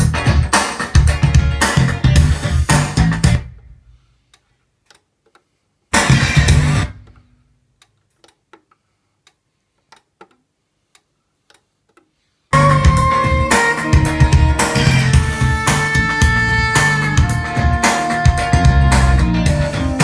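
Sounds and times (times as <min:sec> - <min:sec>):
guitar music from hi-fi: 0:00.0 - 0:03.6, 0:06.0 - 0:07.0, 0:12.6 - 0:20.0.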